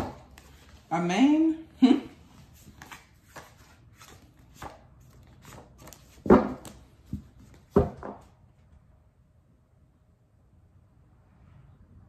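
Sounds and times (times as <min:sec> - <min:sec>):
paper handling: 0:02.3 - 0:07.8.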